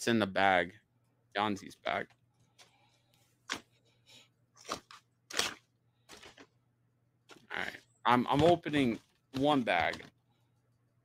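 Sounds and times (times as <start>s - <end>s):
paper bag crinkling: 4.6s - 6.6s.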